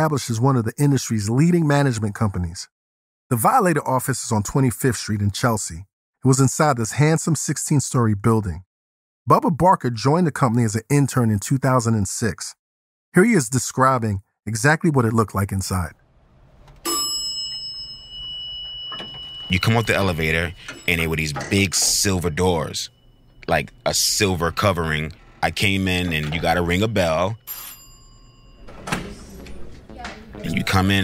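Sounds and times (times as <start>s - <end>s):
door opening: 16.0s - 30.5s
bell ringing: 16.4s - 31.0s
elevator chime ding: 16.6s - 29.9s.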